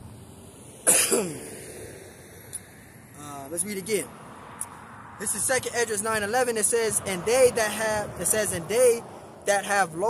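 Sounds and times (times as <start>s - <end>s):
man coughing: 0.9s - 1.6s.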